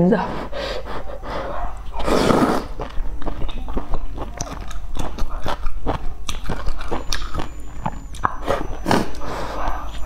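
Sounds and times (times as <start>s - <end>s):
wet chewing and lip smacks: 1.7s - 10.0s
slurping noodles: 2.0s - 3.0s.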